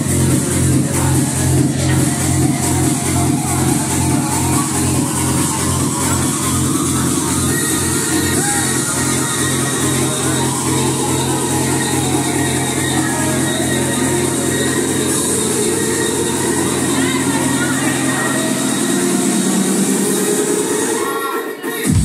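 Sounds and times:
electronic dance music: 0.0 - 22.0.

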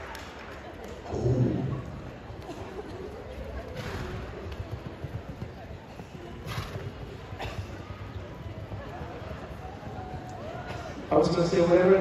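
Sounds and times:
faint echoing voices: 0.0 - 12.0.

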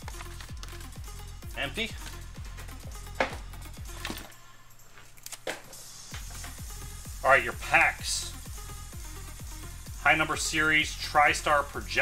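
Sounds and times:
card packs clicking on tabletop: 0.0 - 0.9
electronic dance music: 0.0 - 4.1, 5.7 - 12.0.

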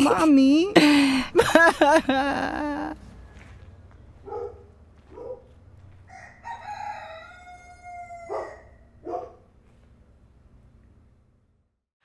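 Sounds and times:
rooster crowing: 6.0 - 9.0.

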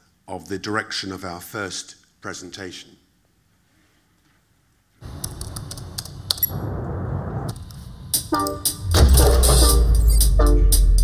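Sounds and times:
walk-on music track: 7.6 - 11.0.

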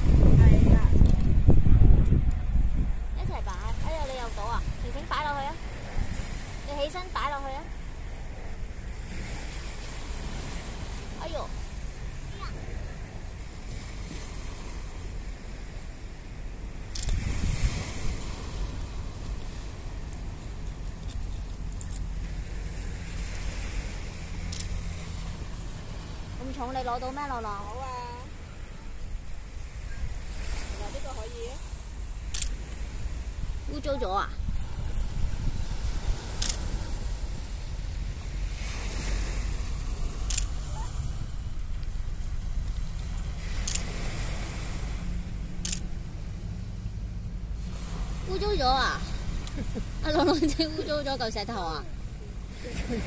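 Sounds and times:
small waves washing onto shore: 0.0 - 53.0
wind on microphone: 0.0 - 53.0.

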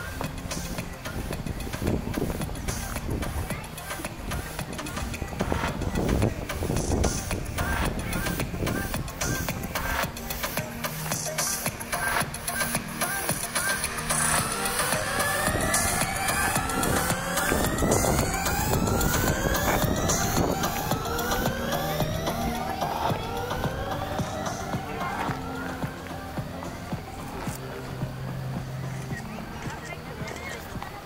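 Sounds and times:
low steady synth tones: 0.0 - 31.0
synthesized tone sweeping upward: 12.0 - 29.6.

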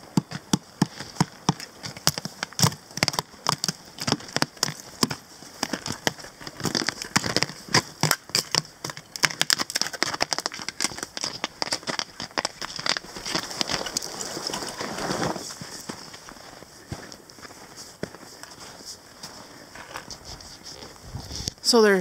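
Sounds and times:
footsteps crunching on snow: 9.9 - 21.6.

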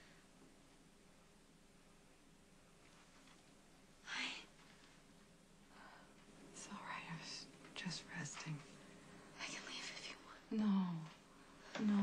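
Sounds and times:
woman whispering: 4.0 - 4.5, 6.6 - 8.7, 9.4 - 11.2.

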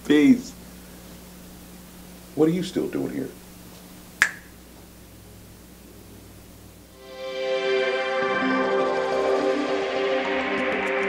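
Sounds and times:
faint steady hum: 0.0 - 7.0
finger snap: 4.2 - 4.5.

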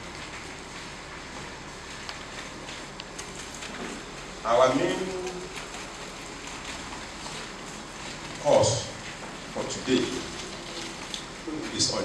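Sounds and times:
steady background hiss: 0.0 - 12.0
man's amplified voice: 4.4 - 5.4, 8.4 - 9.0, 9.6 - 10.4, 11.5 - 12.0.

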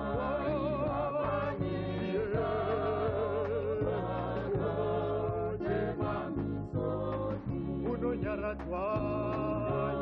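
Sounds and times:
bass line: 0.0 - 10.0
voices singing a hymn: 0.0 - 10.0.

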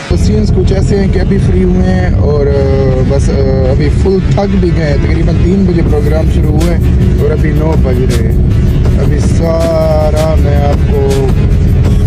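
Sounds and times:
voices in a car: 0.0 - 11.6
engine and road rumble: 0.0 - 12.0
music in a car: 0.0 - 12.0.

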